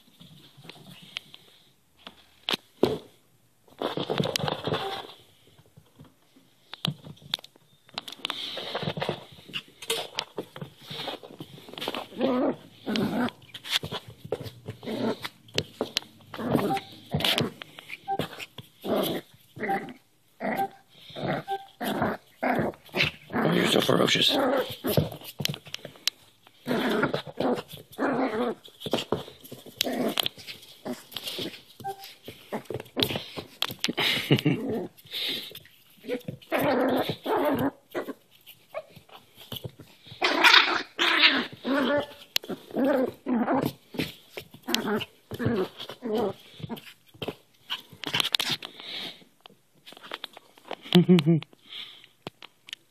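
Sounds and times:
puppy play growling: 10.8 - 25.2, 26.5 - 46.9.

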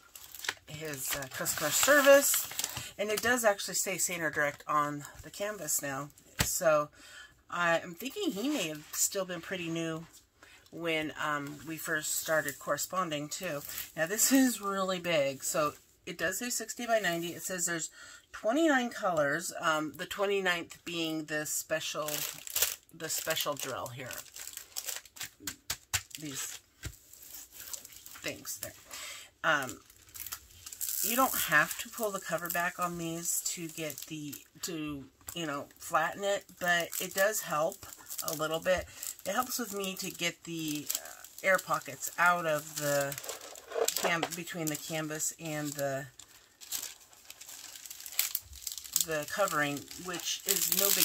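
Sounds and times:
plastic film crinkling: 0.0 - 6.7, 21.8 - 28.9, 29.5 - 51.0.

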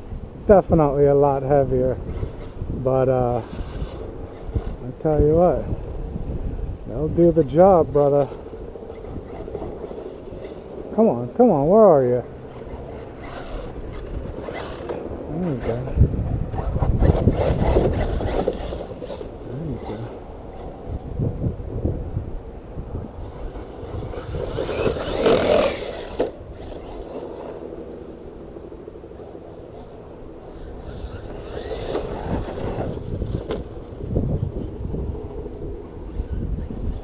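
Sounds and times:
tires on loose dirt: 0.0 - 37.0
wind on microphone: 0.0 - 37.0
rc truck electric motor: 1.9 - 6.0, 7.2 - 10.9, 11.6 - 21.2, 23.0 - 37.0.

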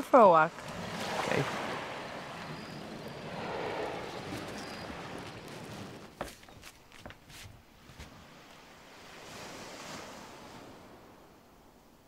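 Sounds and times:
outdoor night ambience hiss: 0.0 - 12.0.

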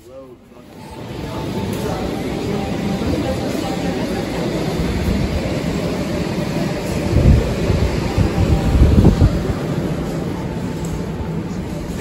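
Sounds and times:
distant shoppers murmur: 0.0 - 12.0
ventilation hum: 0.0 - 12.0
wind buffeting microphone: 6.9 - 9.8.

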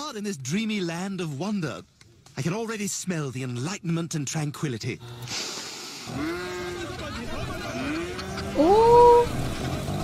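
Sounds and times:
brief hiss: 5.3 - 6.1.

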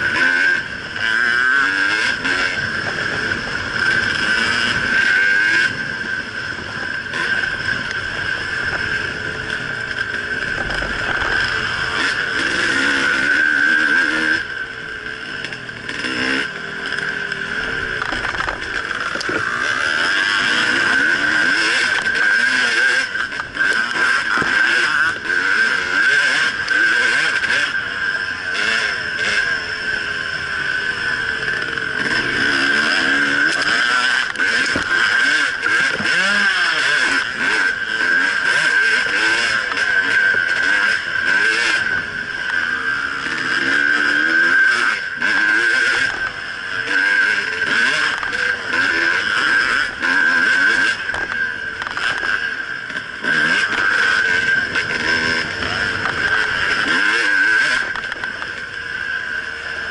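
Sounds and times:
dirt bike engine revving: 0.0 - 59.9
steady high whine: 0.0 - 59.9.

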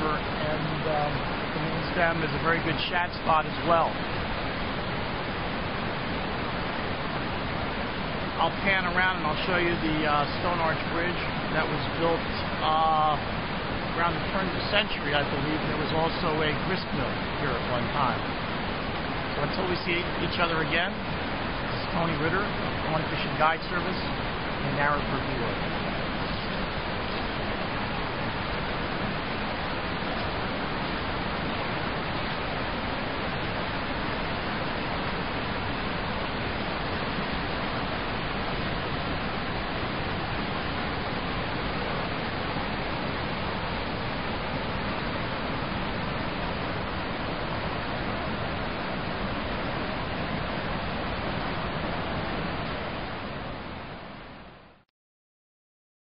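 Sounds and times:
river rushing over rocks: 0.0 - 54.4.

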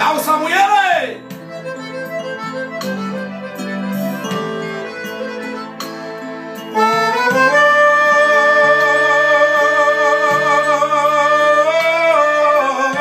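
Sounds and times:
piano accordion melody: 1.1 - 13.0
man singing: 8.5 - 13.0.

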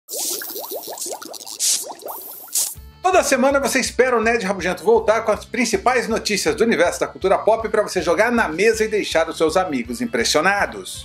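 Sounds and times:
bubbly plops and rising blips: 0.1 - 2.8
hiss: 1.6 - 2.8.

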